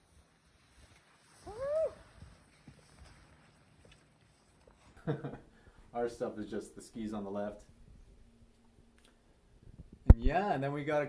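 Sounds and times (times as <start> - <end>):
short vocal cry: 1.4 - 2.1.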